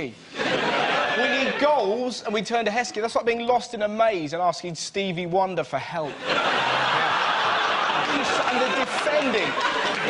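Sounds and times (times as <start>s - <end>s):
studio audience laughing: 0.3s - 2.4s, 6.0s - 10.0s.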